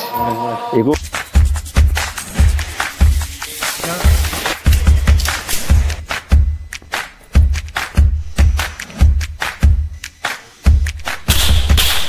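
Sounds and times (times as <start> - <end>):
music with thumping beat: 1.0 - 12.0
airsoft pistol firing: 11.3 - 12.0.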